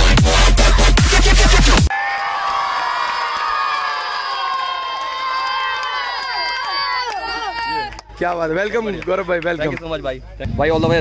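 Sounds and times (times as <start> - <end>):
crowd cheering and shouting: 1.8 - 9.3.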